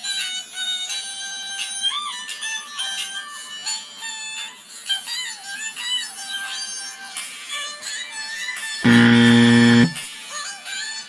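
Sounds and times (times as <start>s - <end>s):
loud electronic buzzer tone: 8.8s - 10.1s.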